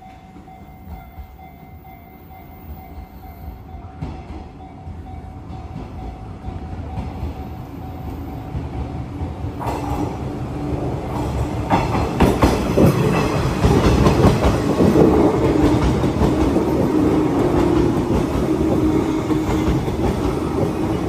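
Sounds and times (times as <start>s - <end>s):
electric train passing: 0.0s - 21.0s
wheels clacking over rail joints: 11.1s - 21.0s.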